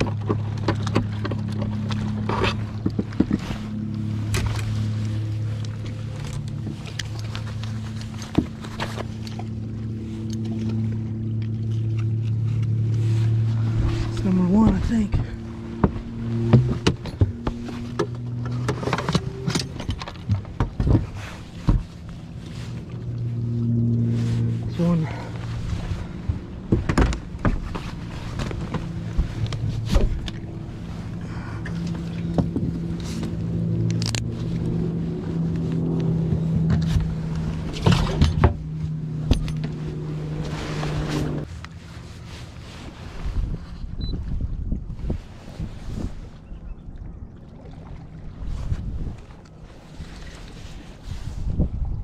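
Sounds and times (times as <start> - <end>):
low motor hum: 0.0 - 52.0.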